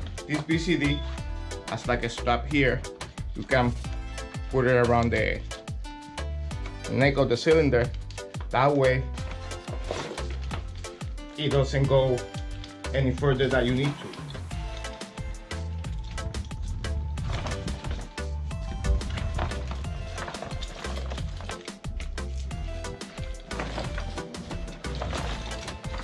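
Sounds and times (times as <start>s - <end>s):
background music with bass line: 0.0s - 26.0s
clicks and knocks of diving gear: 18.9s - 26.0s.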